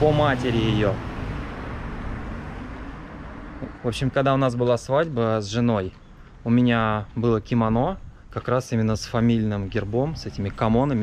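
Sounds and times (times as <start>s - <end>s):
low street rumble and hiss: 0.0s - 11.0s.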